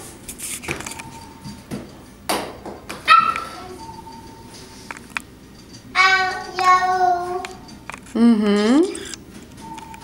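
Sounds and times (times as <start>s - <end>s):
child squealing: 3.1s - 3.7s.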